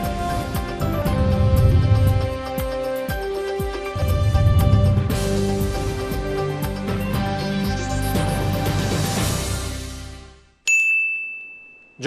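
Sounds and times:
intro theme music: 0:00.0 - 0:10.5
high chime ringing: 0:10.7 - 0:12.0.

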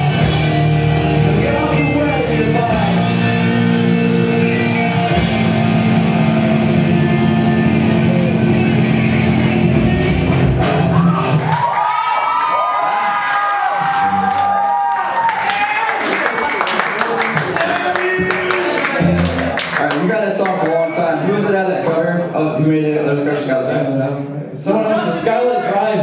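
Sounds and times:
metal band playing live: 0:00.0 - 0:11.6.

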